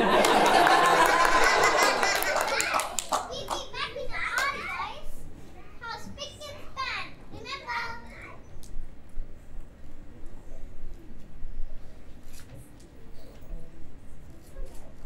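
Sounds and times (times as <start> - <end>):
children calling out: 1.2 - 4.6
jumble of children's voices: 1.7 - 8.6.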